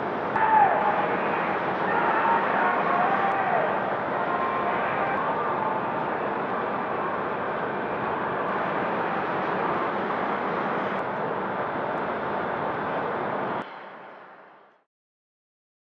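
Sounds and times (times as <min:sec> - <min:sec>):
harbour ambience rushing noise: 0:00.0 - 0:14.5.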